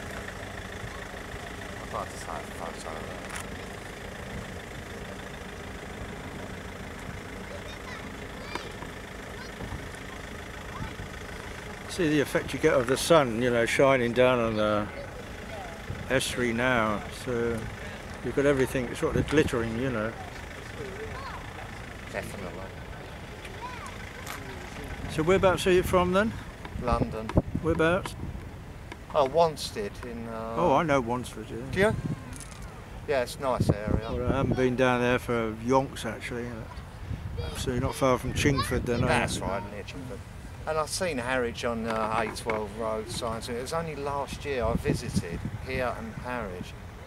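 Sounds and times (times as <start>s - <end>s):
distant engine noise: 0.0s - 47.0s
wind rumble: 24.5s - 29.1s, 44.5s - 46.8s
wind buffeting microphone: 25.0s - 29.5s, 31.1s - 32.4s, 33.4s - 35.0s, 36.6s - 39.7s, 44.0s - 46.8s.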